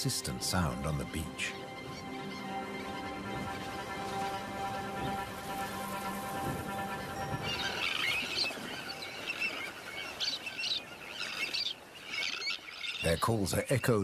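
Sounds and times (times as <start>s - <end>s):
soft background music: 0.0s - 9.8s.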